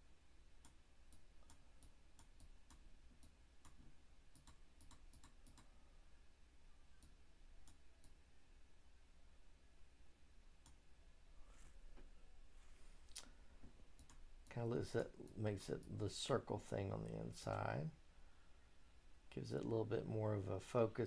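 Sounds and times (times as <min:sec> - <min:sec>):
low steady hum: 0:00.0 - 0:21.0
computer mouse clicks: 0:00.6 - 0:05.7, 0:14.0 - 0:14.2.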